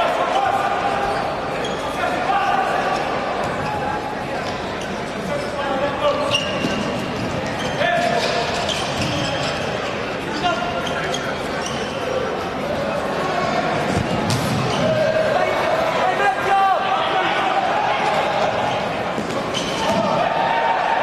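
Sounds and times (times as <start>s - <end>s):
voices calling in a hall: 0.0s - 21.0s
shoe squeaks on court floor: 1.0s - 2.0s, 3.4s - 12.4s, 18.7s - 20.0s
ball kicked and dribbled: 13.9s - 14.8s.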